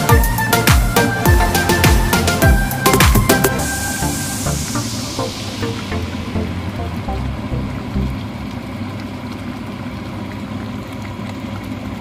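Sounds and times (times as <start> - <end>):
music with bass beat: 0.0 - 8.3
liquid bubbling in a pot: 5.5 - 12.0.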